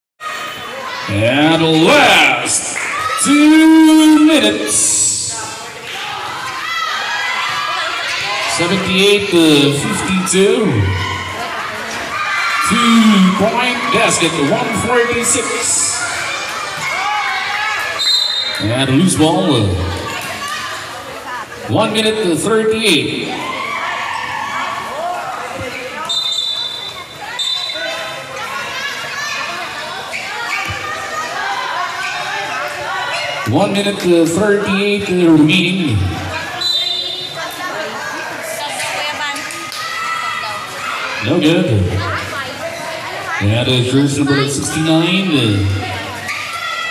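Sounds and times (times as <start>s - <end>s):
crowd shouting and cheering: 0.2s - 46.9s
people calling out: 0.3s - 46.9s.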